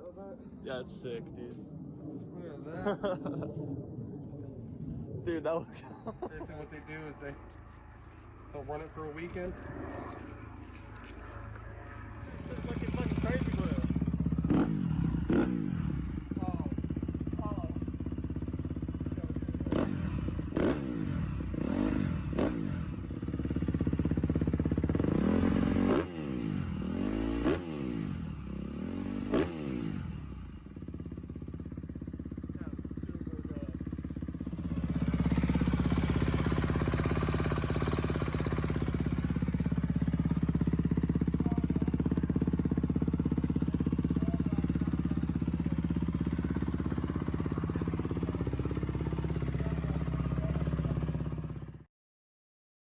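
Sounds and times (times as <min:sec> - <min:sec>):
dirt bike engine revving and idling: 0:06.0 - 0:51.9.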